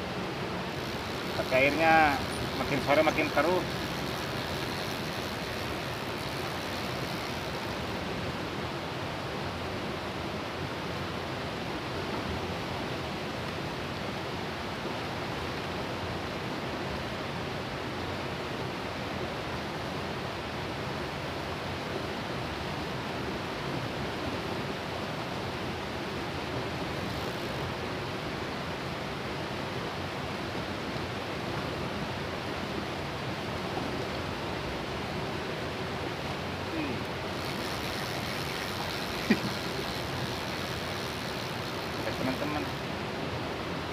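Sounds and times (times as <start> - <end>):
river rushing over rocks: 0.0 - 43.9.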